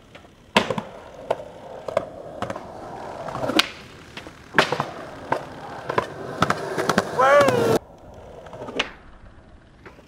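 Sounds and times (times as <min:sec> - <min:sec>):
skateboard clacks: 0:00.0 - 0:10.0
skateboard wheels rolling on concrete: 0:00.0 - 0:10.0.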